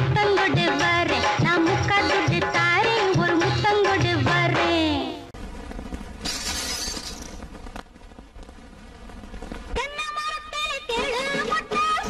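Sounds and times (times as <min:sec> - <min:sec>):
glass breaking: 0:06.2 - 0:07.4.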